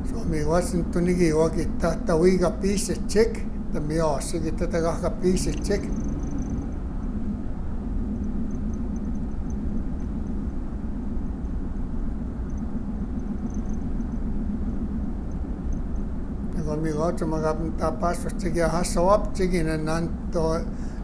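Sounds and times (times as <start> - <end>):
vehicle engine and road rumble: 0.0 - 21.0.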